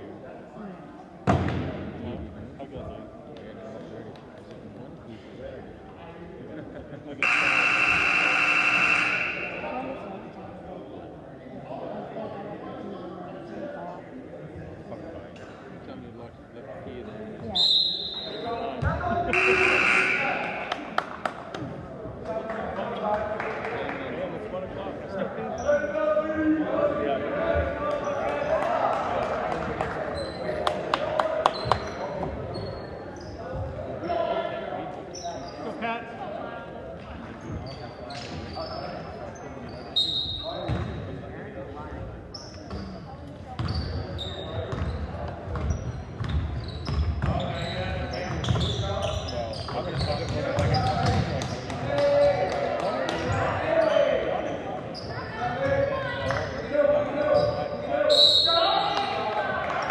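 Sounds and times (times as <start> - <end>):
spectator chatter: 0.0 - 59.9
players calling: 7.2 - 10.3, 17.8 - 21.3
sneakers squeaking: 30.1 - 30.5, 31.5 - 33.7, 37.4 - 41.1, 42.2 - 51.7, 52.8 - 59.2.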